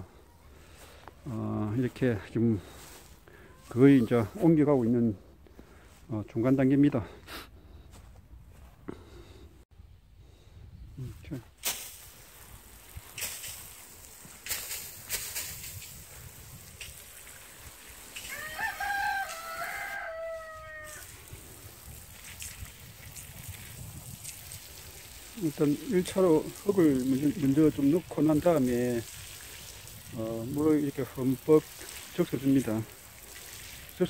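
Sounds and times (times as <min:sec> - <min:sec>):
rooster crowing: 0:18.2 - 0:21.2.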